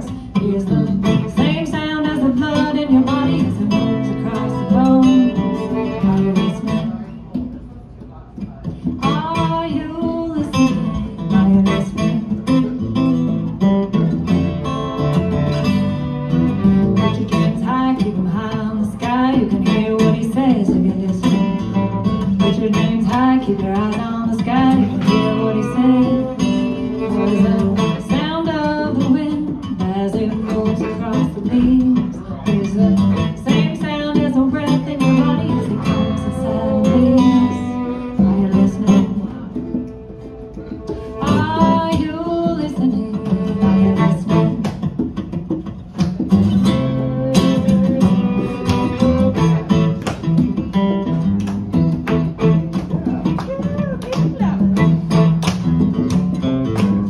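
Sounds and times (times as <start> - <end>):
woman singing: 0.0 - 7.1, 8.9 - 12.7, 16.6 - 40.2, 40.8 - 45.0
hand drum: 0.0 - 57.0
strummed acoustic guitar: 0.0 - 57.0
violin: 0.6 - 7.0, 14.4 - 45.6, 46.2 - 55.6.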